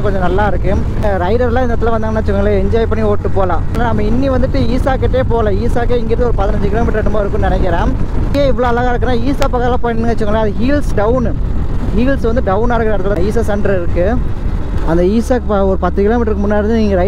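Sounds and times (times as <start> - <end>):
motorcycle engine rumble: 0.0 - 17.0
person talking: 0.0 - 17.0.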